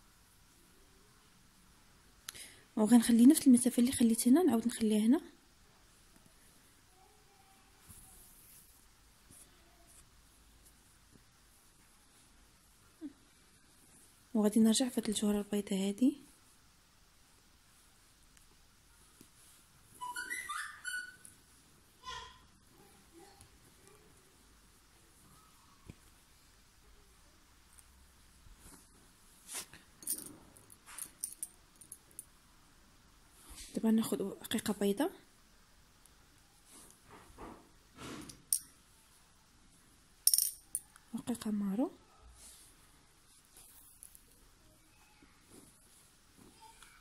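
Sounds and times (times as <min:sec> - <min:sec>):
soft rustles of handling: 0:05.7 - 0:20.4, 0:21.1 - 0:32.4, 0:33.1 - 0:40.1, 0:40.7 - 0:47.0.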